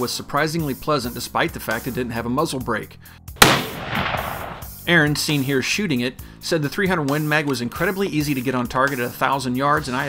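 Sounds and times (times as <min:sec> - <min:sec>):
rifle shot with echo: 0:03.4 - 0:05.2.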